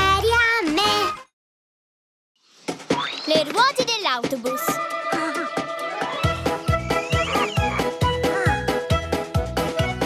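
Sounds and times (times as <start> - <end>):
child singing: 0.0 - 1.2
children's song backing music: 0.0 - 1.2, 2.9 - 10.0.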